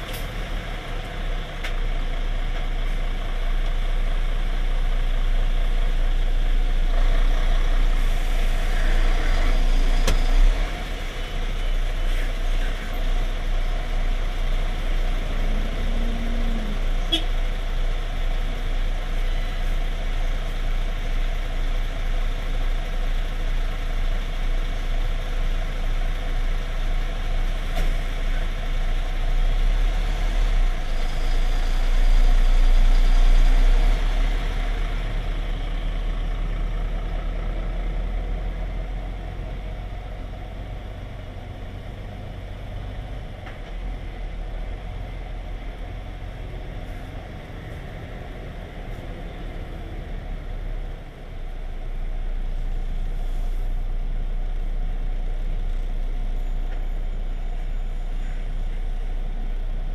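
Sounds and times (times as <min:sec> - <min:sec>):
diesel lorry engine idling: 0:00.0 - 0:59.9.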